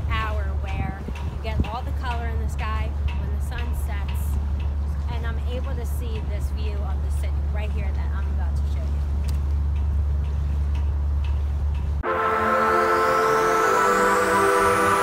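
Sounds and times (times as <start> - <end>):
woman talking: 0.0 - 4.4, 5.0 - 9.0
steady low rumble: 0.0 - 15.0.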